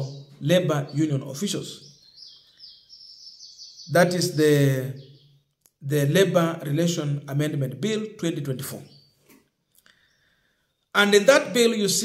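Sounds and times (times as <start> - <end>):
person speaking: 0.0 - 1.8, 3.9 - 5.0, 5.8 - 8.8, 11.0 - 12.0
bird twittering faintly: 0.0 - 5.6.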